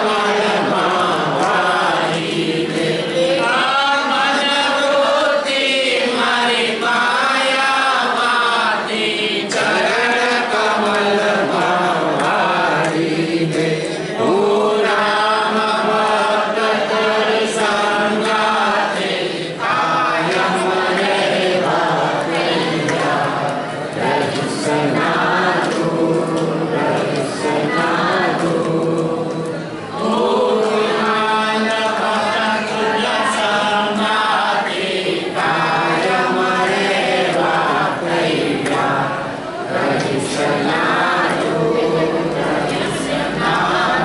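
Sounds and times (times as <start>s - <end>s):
group chanting in unison: 0.0s - 44.0s.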